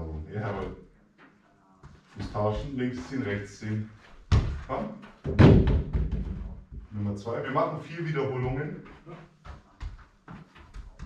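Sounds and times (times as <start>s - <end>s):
football thud: 4.3s - 6.6s.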